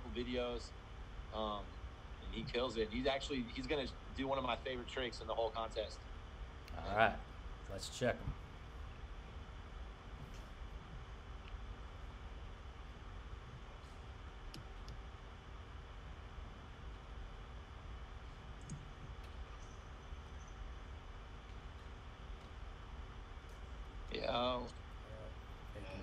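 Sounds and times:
low steady hiss: 0.0s - 26.0s
faint clicks: 14.4s - 15.1s, 18.5s - 19.9s.

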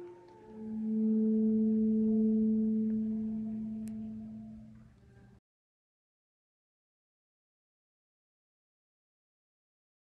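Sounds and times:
saxophone long low note: 0.0s - 5.3s.

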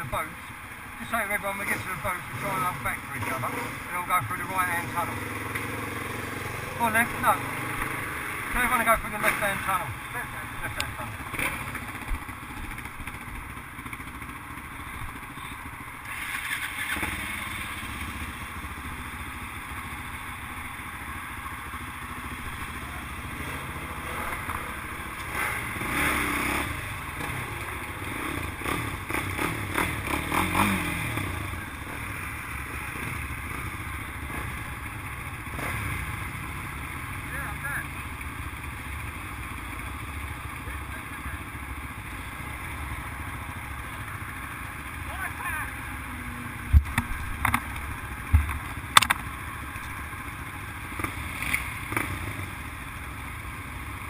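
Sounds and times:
quad bike engines idling: 0.0s - 54.0s
quad bike engines revving: 0.0s - 54.0s.

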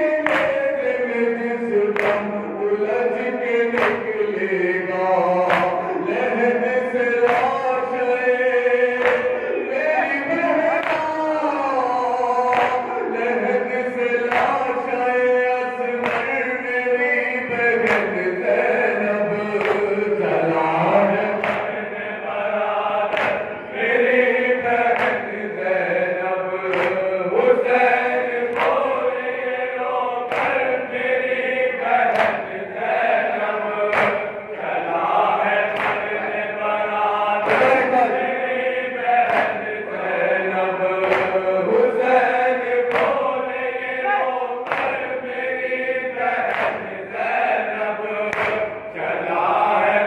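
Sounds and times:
group of men chanting: 0.0s - 50.0s.

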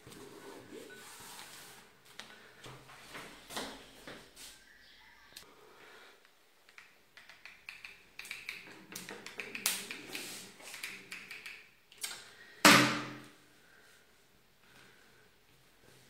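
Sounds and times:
small clicks and taps: 6.2s - 12.2s.

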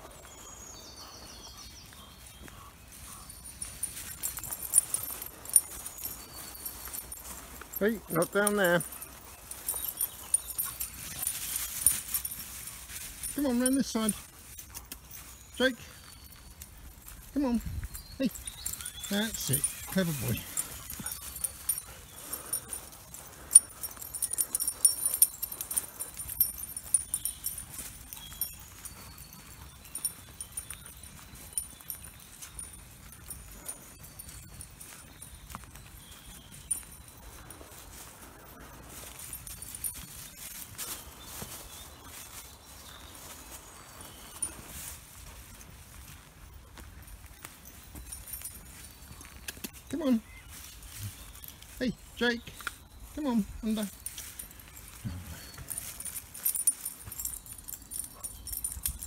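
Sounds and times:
footsteps on woodland path: 0.0s - 59.0s
rustling: 3.0s - 59.0s.

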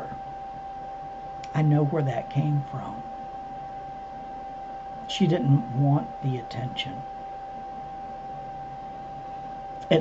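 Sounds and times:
high-pitched tone: 0.0s - 0.2s.

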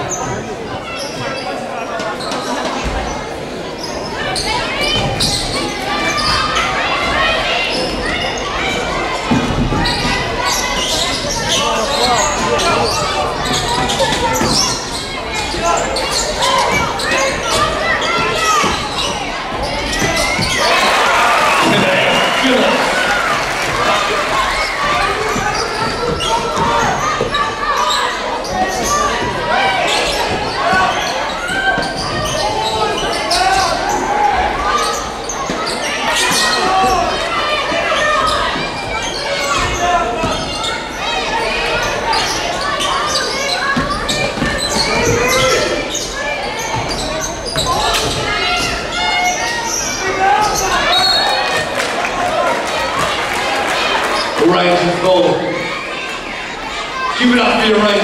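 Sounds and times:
sneaker squeaks: 0.0s - 3.2s, 3.8s - 20.8s, 24.4s - 51.8s
players shouting: 4.2s - 58.0s.

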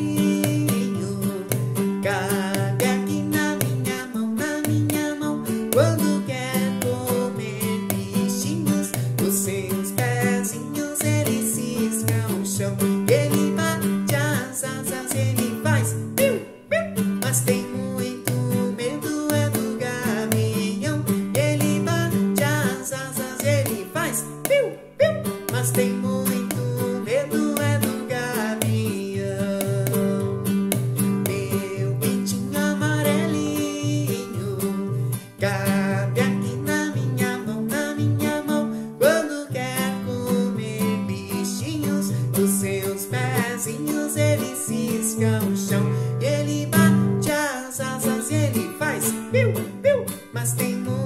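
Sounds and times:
classical guitar strummed: 0.0s - 51.0s
man singing: 0.0s - 51.0s.

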